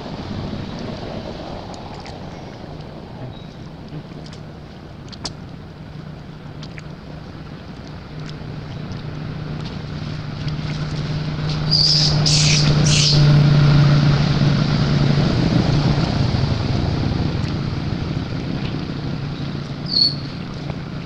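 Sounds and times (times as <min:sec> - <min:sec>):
low hum and rumble: 0:00.0 - 0:21.0
baby monkey squeal: 0:11.7 - 0:13.2
baby monkey screaming: 0:11.7 - 0:13.3.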